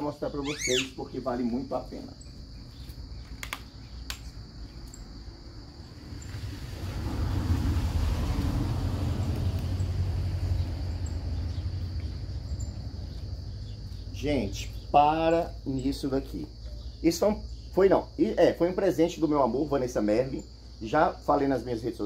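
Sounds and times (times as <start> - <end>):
high-pitched insect drone: 0.0 - 2.6
low rumble: 5.4 - 14.4.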